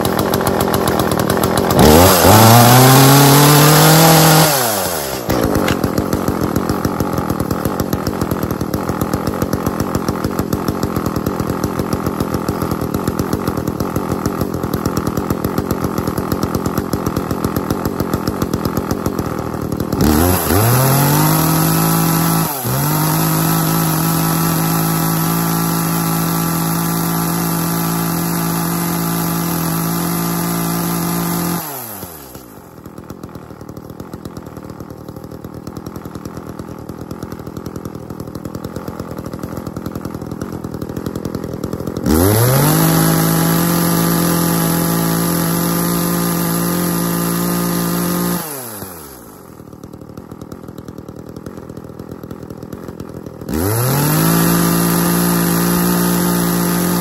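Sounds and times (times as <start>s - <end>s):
chainsaw engine idling and revving: 0.0s - 57.0s.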